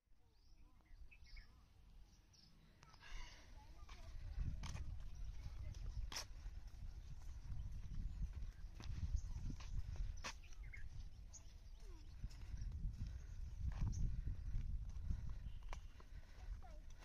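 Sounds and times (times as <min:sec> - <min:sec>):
wind buffeting microphone: 0:03.6 - 0:17.0.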